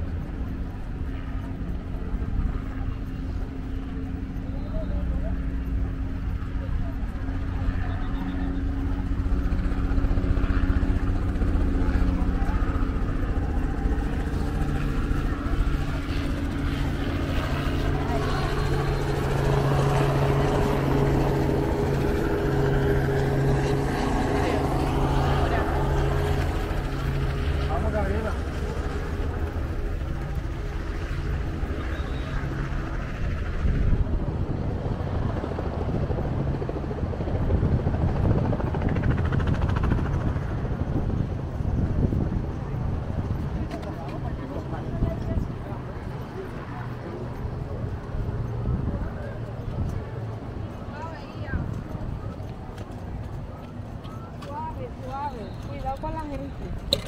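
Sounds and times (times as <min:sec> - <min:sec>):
engine drone: 0:00.0 - 0:37.8
people talking: 0:00.3 - 0:35.8, 0:42.0 - 0:57.0.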